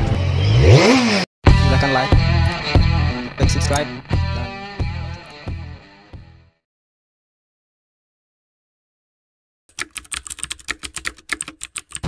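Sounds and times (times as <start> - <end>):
engine revving sound effect: 0.0 - 3.8
guitar music: 1.5 - 6.6.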